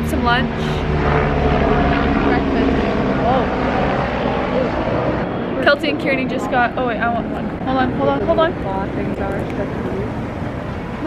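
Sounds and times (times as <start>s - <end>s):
vehicle engine passing: 0.0s - 11.0s
faint voices: 1.8s - 11.0s.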